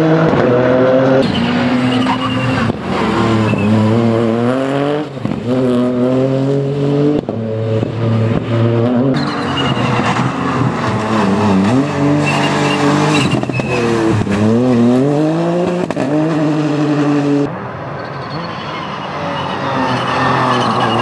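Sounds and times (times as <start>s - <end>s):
rally car engine revving: 0.0s - 21.0s.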